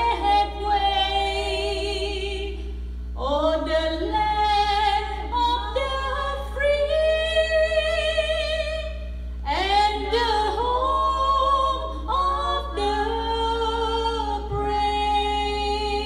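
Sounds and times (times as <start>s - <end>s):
women singing unaccompanied: 0.0s - 16.0s.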